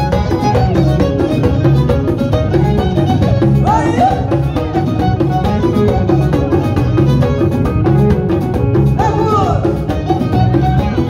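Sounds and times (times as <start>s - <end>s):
drum kit beat: 0.0s - 11.0s.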